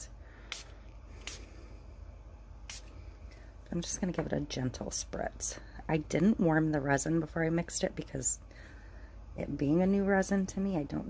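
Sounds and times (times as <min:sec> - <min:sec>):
spray bottle spritzing: 0:02.7 - 0:02.9.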